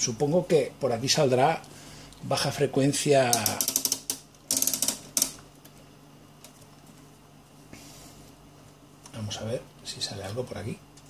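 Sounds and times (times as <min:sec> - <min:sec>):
faint steady hum: 0:00.0 - 0:11.0
test leads clicking and rattling: 0:03.3 - 0:05.7.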